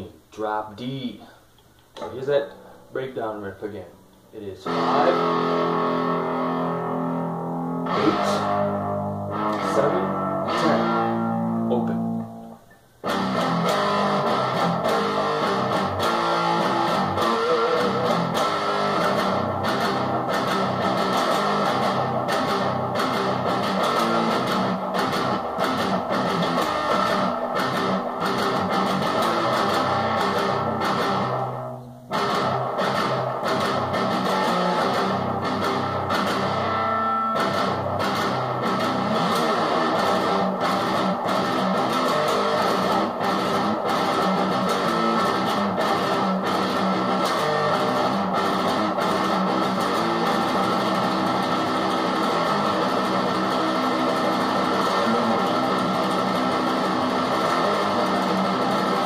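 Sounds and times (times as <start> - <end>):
palm-muted electric guitar riff: 4.6 - 59.0.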